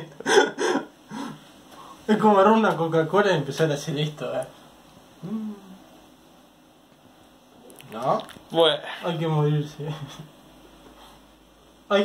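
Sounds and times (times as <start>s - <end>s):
man laughing: 0.0s - 1.3s.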